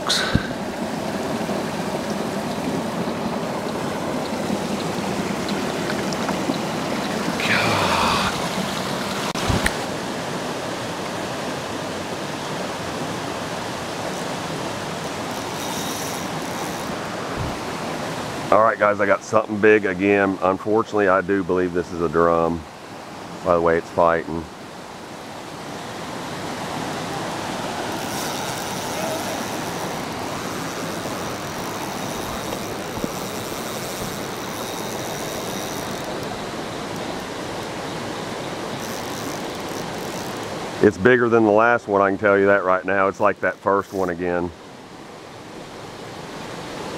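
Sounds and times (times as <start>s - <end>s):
water rushing over rapids: 0.0s - 46.9s.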